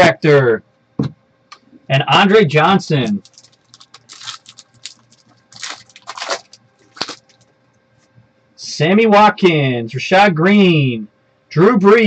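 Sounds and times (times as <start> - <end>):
cards and wrapper rustling: 2.9 - 7.5.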